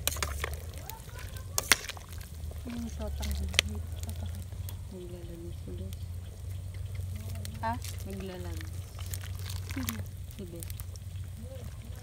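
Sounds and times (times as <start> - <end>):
liquid sloshing in pot: 0.0 - 4.5
steady low rumble: 0.0 - 12.0.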